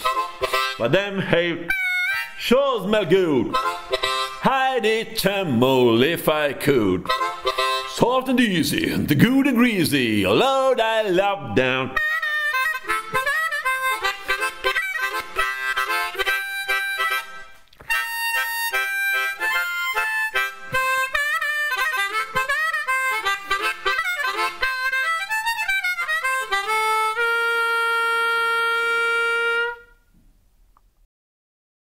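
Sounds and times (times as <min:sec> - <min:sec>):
blues harmonica: 0:00.0 - 0:30.1.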